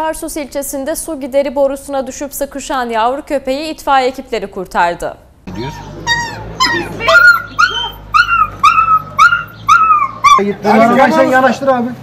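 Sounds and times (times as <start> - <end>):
puppy yelping: 5.5 - 11.4.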